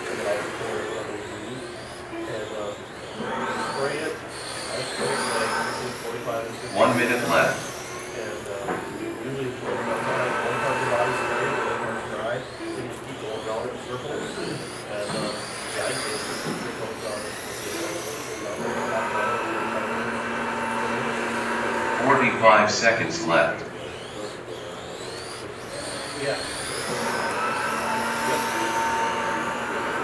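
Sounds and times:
electric toy car motors whining: 0:00.0 - 0:30.0
voices chattering: 0:00.0 - 0:30.0.

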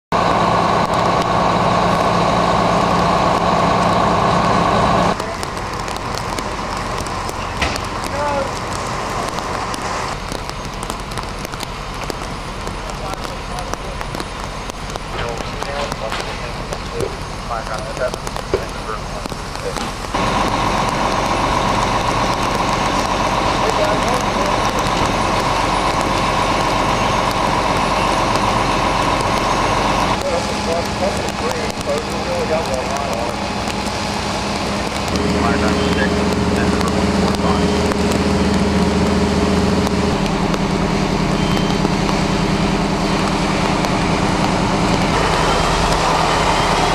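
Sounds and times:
constant high whine: 0:00.1 - 0:46.9
fire truck engine running: 0:00.1 - 0:46.9
outdoor background noise: 0:00.1 - 0:46.9.

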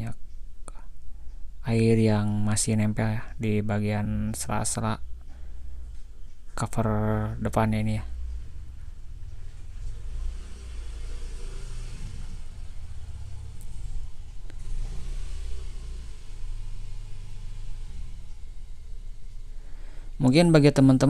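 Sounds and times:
electric blower running: 0:08.2 - 0:20.2.

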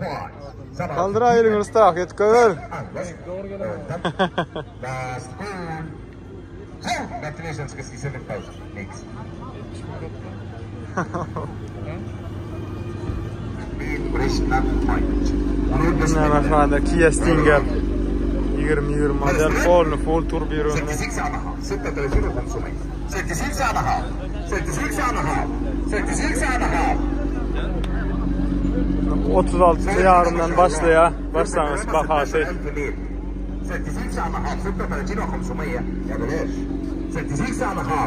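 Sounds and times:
car engine idling: 0:00.0 - 0:38.0
crowd murmur: 0:00.0 - 0:38.0
men talking: 0:00.0 - 0:38.0.

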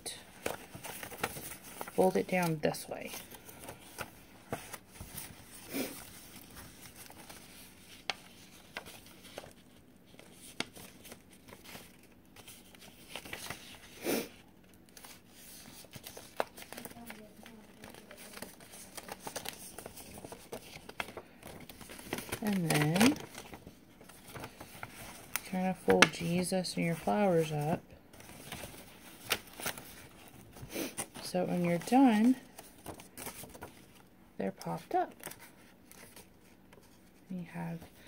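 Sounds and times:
paper rustling and crinkling: 0:00.0 - 0:38.0.

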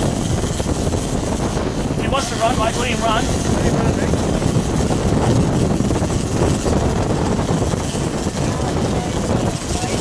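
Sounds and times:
boat engine rumble: 0:00.0 - 0:10.0
water rushing past hull: 0:00.0 - 0:10.0
wind buffeting microphone: 0:00.0 - 0:10.0.

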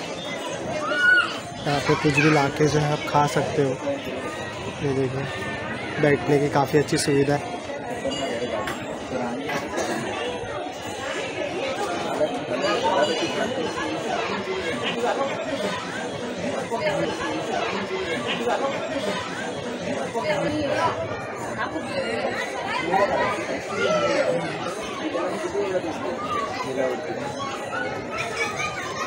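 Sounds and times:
hubbub of voices: 0:00.0 - 0:29.0.

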